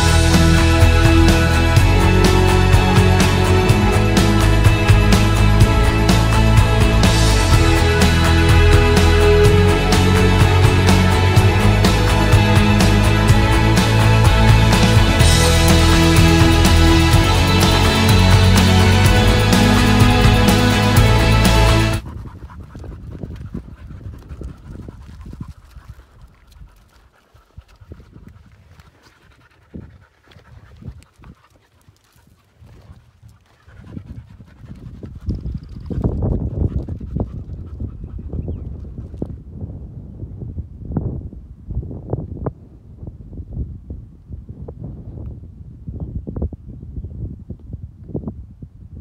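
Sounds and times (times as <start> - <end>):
background music: 0.0 - 22.0
low thumps: 0.0 - 22.0
panting: 18.6 - 38.6.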